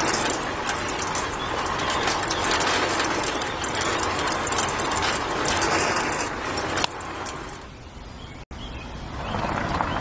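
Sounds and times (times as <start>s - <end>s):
small concrete mixer running: 0.0s - 7.7s.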